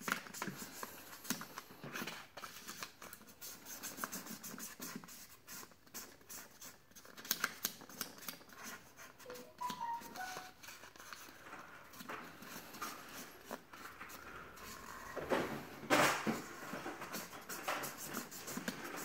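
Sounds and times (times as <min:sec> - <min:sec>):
marker squeaking: 0:09.2 - 0:10.5
marker scratching on paper plate: 0:17.1 - 0:19.0.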